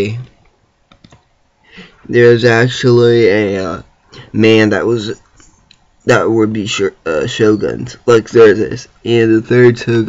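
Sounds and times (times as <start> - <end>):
person talking: 0.0 - 0.4, 2.0 - 5.4, 6.0 - 10.0
faint breath: 1.6 - 2.1.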